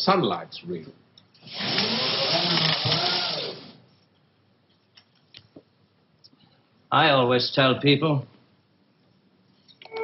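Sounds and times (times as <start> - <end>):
small electric motor whirring: 1.4 - 3.8.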